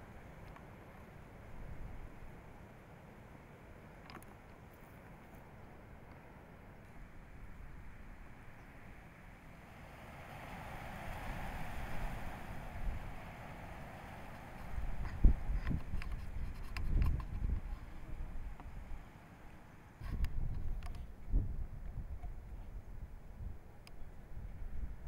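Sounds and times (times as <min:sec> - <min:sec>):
wind buffeting microphone: 0:09.8 - 0:19.1, 0:20.0 - 0:25.0.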